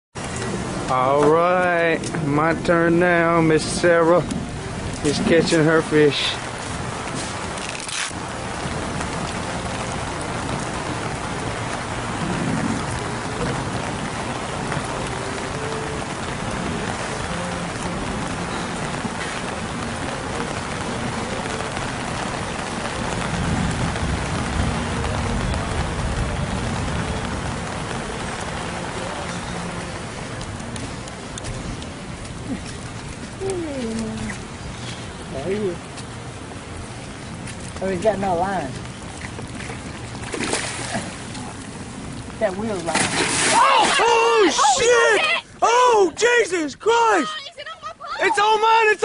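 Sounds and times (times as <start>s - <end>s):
rain falling on wooden pier: 0.2s - 49.0s
low rumble: 8.2s - 35.3s.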